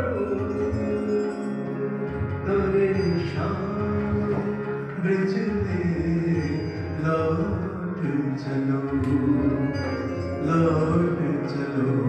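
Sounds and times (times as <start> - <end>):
devotional music: 0.0 - 12.0
drawn-out melodic line: 0.0 - 12.0
person singing: 0.0 - 12.0.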